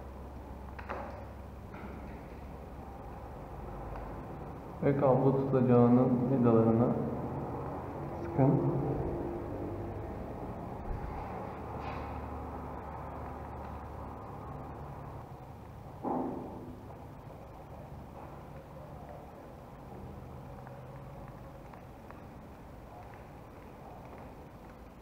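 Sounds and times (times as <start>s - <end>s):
low background hum: 0.0s - 25.0s.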